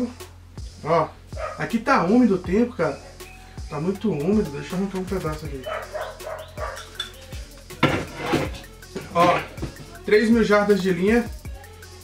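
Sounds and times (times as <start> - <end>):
music with bass kick beat: 0.0 - 12.0.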